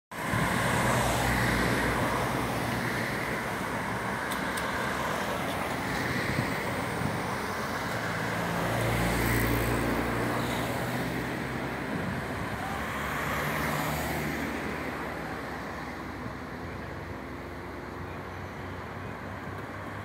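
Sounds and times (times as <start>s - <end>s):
tyres on asphalt: 0.1s - 20.0s.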